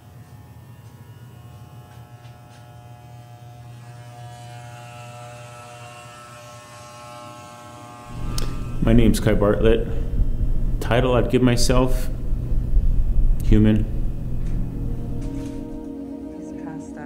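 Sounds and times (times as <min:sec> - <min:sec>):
electric hair clippers buzzing: 0:00.0 - 0:11.9.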